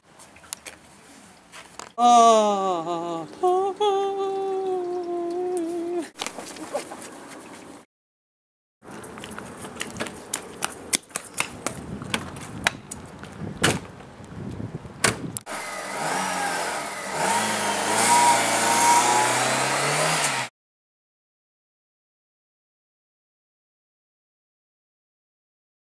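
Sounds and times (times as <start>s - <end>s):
car engine revving: 15.5s - 20.5s.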